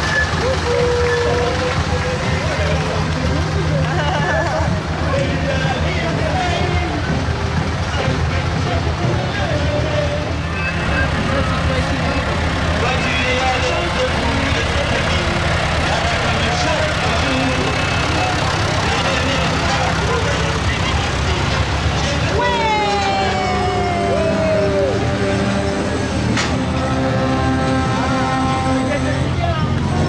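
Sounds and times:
crowd chatter: 0.0 - 30.0
tractor engines running: 0.0 - 30.0.

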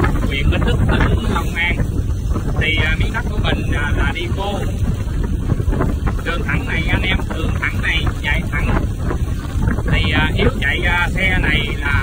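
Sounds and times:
motorbike engine and road rumble: 0.0 - 12.0
wind buffeting microphone: 0.0 - 12.0.

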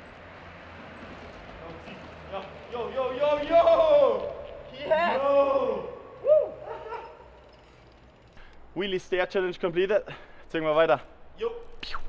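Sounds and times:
man's cheering shout: 3.3 - 7.1.

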